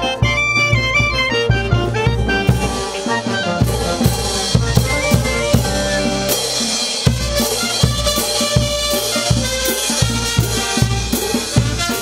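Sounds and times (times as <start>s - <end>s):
saxophones and clarinets melody: 0.0s - 12.0s.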